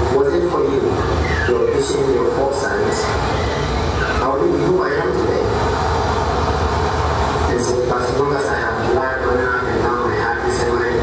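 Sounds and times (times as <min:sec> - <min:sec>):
echoing speech over loudspeakers: 0:07.5 - 0:11.0.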